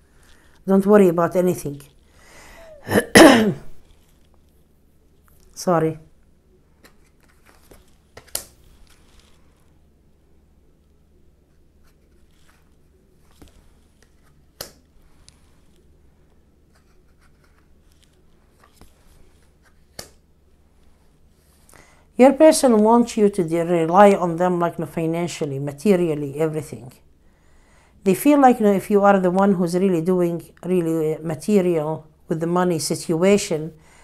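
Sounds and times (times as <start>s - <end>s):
low steady hum: 0.0s - 34.0s
woman clearing her throat: 2.7s - 3.7s
cards rustling in hands: 3.8s - 5.6s, 6.7s - 9.8s, 11.4s - 21.8s.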